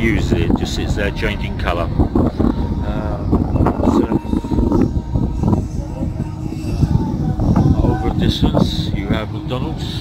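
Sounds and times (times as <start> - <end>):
low city rumble: 0.0 - 10.0
man singing karaoke: 6.5 - 10.0.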